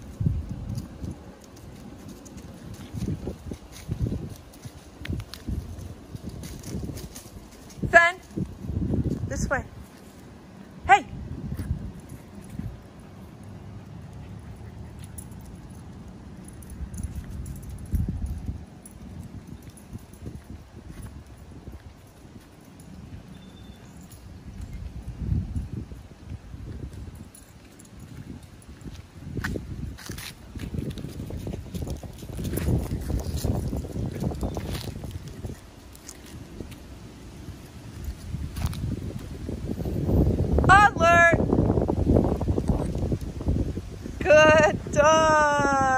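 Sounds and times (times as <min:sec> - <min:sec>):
footsteps on asphalt: 0:00.0 - 0:40.6
wind rumble on microphone: 0:00.0 - 0:45.9
faint light jingling: 0:14.5 - 0:26.2, 0:26.9 - 0:29.0
microphone handling rumble: 0:28.1 - 0:36.8.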